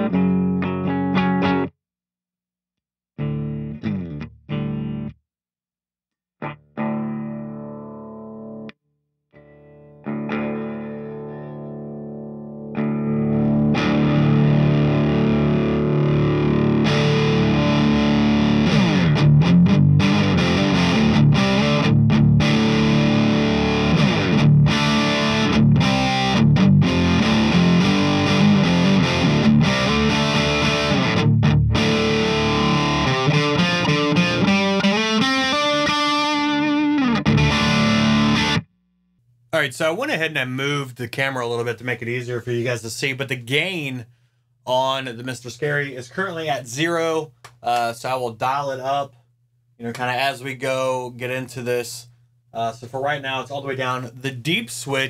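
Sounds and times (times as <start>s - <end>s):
electric guitar chords: 0.0s - 1.7s, 3.2s - 5.2s, 6.4s - 8.8s, 9.4s - 38.7s.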